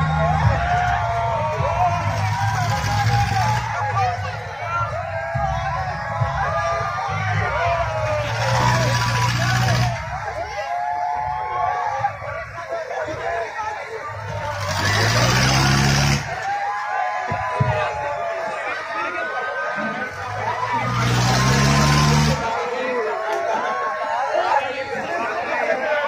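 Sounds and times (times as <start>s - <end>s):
riders shouting and screaming: 0.0s - 26.0s.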